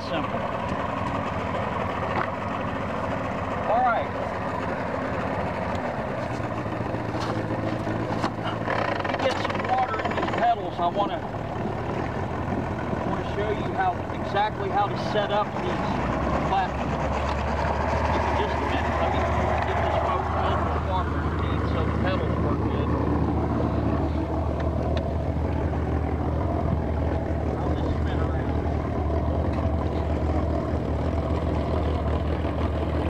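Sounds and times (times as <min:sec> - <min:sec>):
outboard motor humming: 0:00.0 - 0:33.0.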